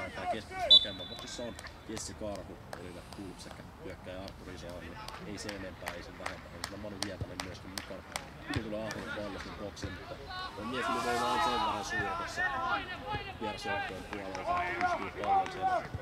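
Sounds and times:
football players calling out: 0.0 - 2.1, 8.2 - 16.0.

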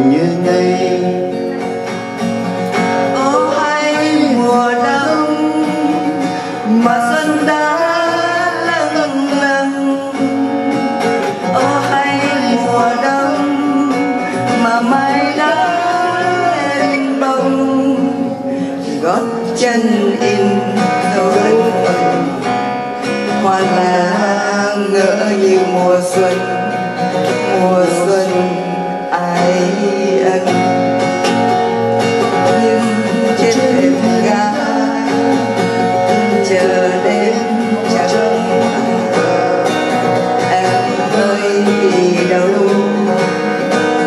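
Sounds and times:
acoustic guitar strumming: 0.0 - 44.0
person singing slow melody: 0.0 - 44.0.

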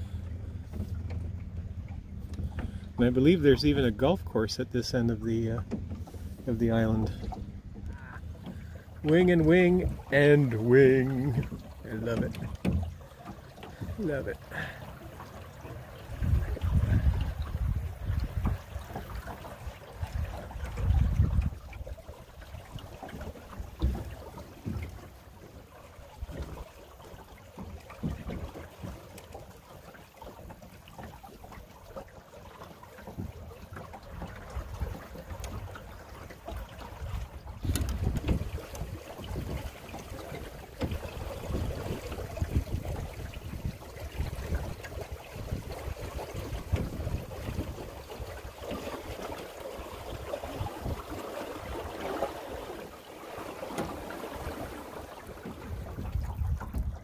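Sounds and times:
water washing along boat hull: 0.0 - 57.0
wind buffeting microphone: 16.0 - 24.9, 37.0 - 49.2, 50.1 - 52.0, 55.4 - 57.0.

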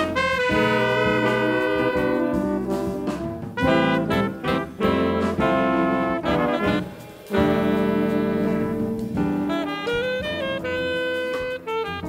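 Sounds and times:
horns holding sustained notes: 0.0 - 12.0
jazz ensemble playing: 0.0 - 12.0.

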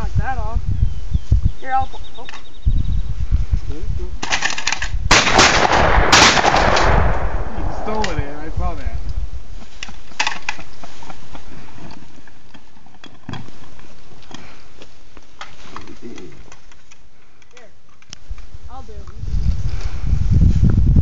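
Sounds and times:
shotgun shots with echo: 5.1 - 8.4.

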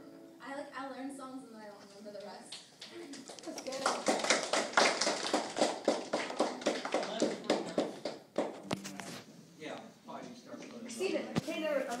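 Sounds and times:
people clapping: 2.5 - 8.8.

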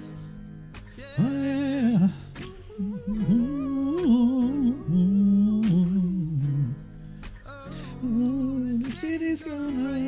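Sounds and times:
singer humming melody: 0.9 - 6.8.

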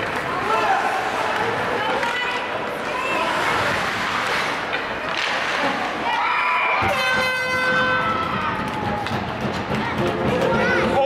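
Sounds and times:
noisy crowd: 0.0 - 11.0
horns blaring: 6.8 - 8.2.

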